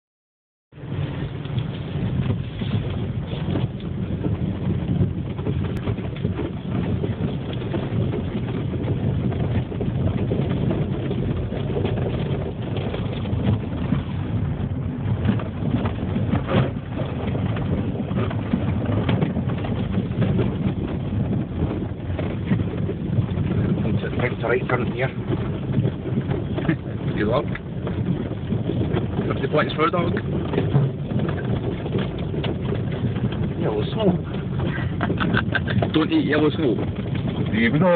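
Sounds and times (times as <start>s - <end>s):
car engine and tyres rumbling: 0.7s - 37.9s.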